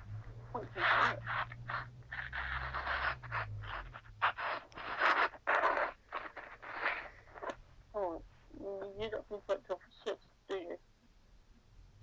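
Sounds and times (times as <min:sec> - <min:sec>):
scraping and rustling: 0:00.0 - 0:09.0.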